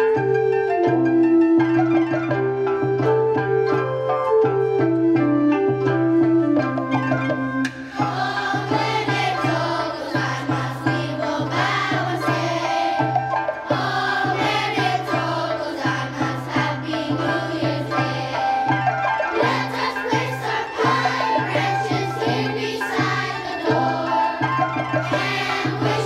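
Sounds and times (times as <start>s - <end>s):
instrumental accompaniment: 0.0s - 26.0s
children's chorus singing: 7.7s - 26.0s.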